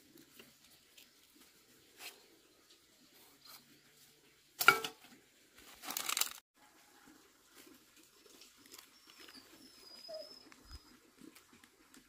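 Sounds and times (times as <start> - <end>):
banana leaves rustling: 5.6 - 6.4.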